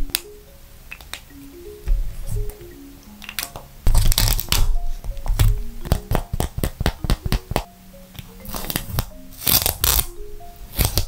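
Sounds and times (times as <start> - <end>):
soft plucked background music: 0.0 - 11.0
paper crinkling and rustling: 3.9 - 5.5.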